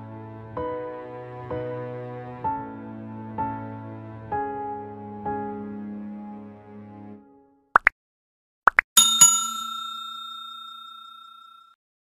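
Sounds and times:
bell-like ding: 0:09.0 - 0:11.8.

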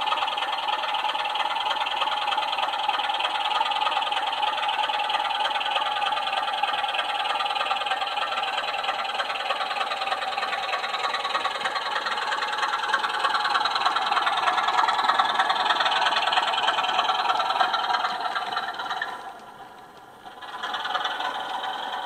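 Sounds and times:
model locomotive engine sound: 0:00.0 - 0:22.0
wagon wheels rattling on track: 0:00.0 - 0:22.0.

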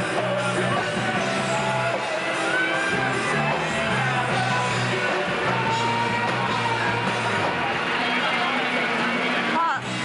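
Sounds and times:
indistinct voices: 0:00.0 - 0:10.0.

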